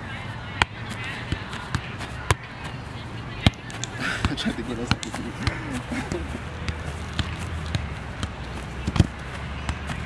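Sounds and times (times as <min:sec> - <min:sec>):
soccer ball kicked by foot: 0:00.5 - 0:10.0.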